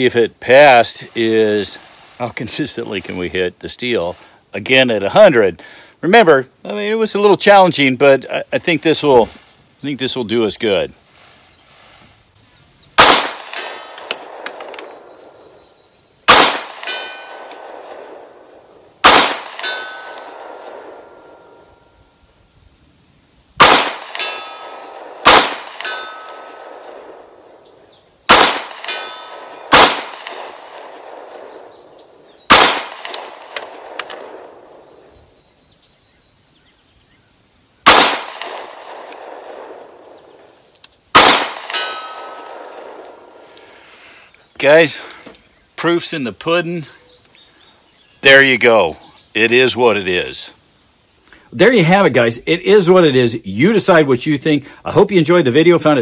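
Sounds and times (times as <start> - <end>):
pistol shots: 13.0 - 15.0, 16.3 - 18.3, 19.0 - 21.0, 23.6 - 27.2, 28.3 - 31.7, 32.5 - 34.8, 37.8 - 39.8, 41.1 - 43.1
metallic ring of steel target: 13.4 - 14.9, 16.8 - 17.9, 19.5 - 22.0, 24.1 - 25.1, 25.8 - 26.6, 28.8 - 29.6, 41.7 - 42.7.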